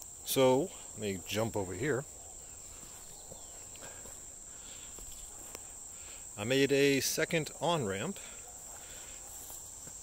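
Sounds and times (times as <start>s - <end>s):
footsteps on dirt: 2.5s - 5.8s, 8.6s - 10.0s.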